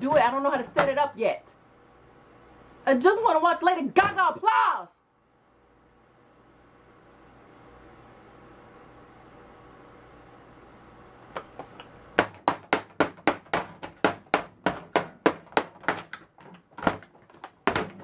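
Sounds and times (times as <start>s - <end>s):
faint room hum: 0.0s - 18.0s
hammer striking laptop: 12.2s - 18.0s.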